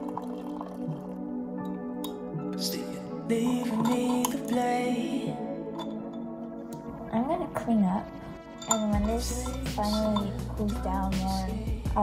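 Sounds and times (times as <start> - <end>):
water pouring into a mug: 0.0 - 1.3, 3.3 - 4.8
water dripping: 0.0 - 2.3, 3.3 - 4.7
soft background music: 0.0 - 12.0.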